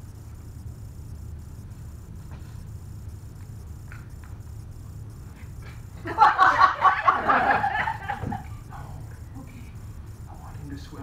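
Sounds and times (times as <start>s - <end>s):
steady low hum: 0.0s - 11.0s
audience laughter: 6.0s - 8.5s.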